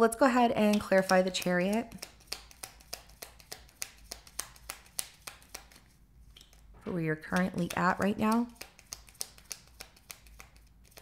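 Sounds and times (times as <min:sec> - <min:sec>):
cards being shuffled: 0:00.6 - 0:11.0.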